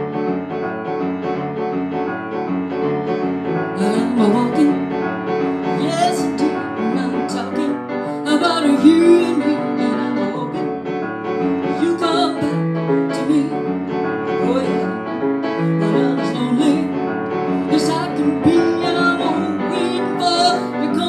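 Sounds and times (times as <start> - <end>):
rhythm and blues piano: 0.0 - 21.0
woman singing: 3.8 - 4.9, 5.8 - 10.7, 11.7 - 13.7, 14.4 - 15.0, 15.8 - 17.0, 17.7 - 21.0.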